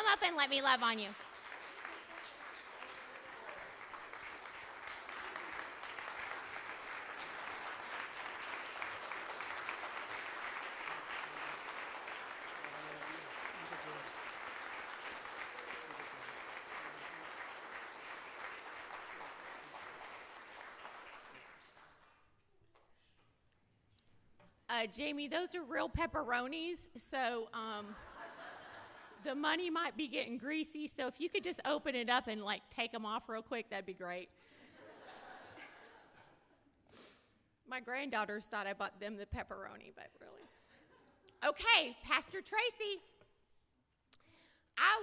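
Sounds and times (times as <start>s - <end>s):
congregation applauding: 0.0s - 22.4s.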